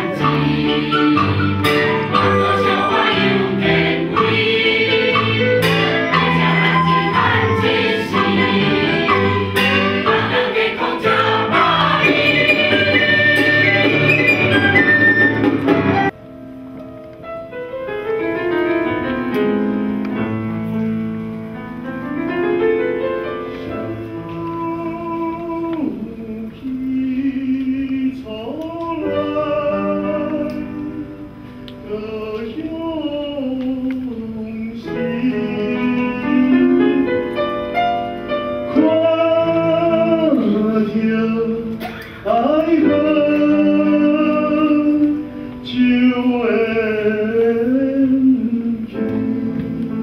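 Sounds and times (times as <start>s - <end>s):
piano accompaniment: 0.0s - 50.0s
man singing: 23.9s - 37.2s, 38.7s - 49.5s.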